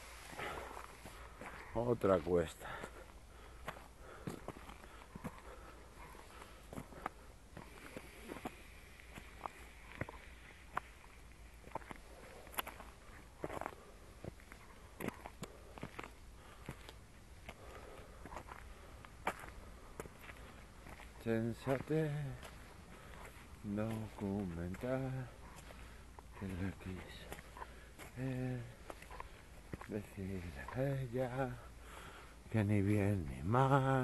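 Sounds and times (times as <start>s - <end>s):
footsteps on stony dirt track: 0.0s - 34.0s.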